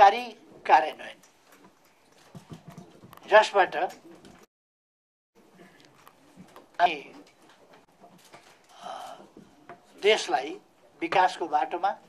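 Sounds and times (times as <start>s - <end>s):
man speaking: 0.0s - 1.2s, 3.3s - 4.0s, 6.8s - 7.2s, 10.0s - 12.0s.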